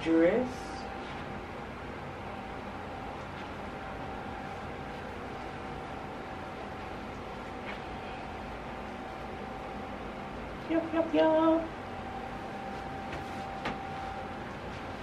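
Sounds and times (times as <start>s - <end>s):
faint constant hum: 0.0s - 15.0s.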